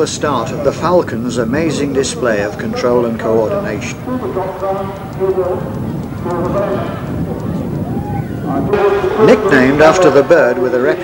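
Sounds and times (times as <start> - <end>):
outdoor background noise: 0.0 - 11.0
indistinct voice speaking: 8.5 - 11.0.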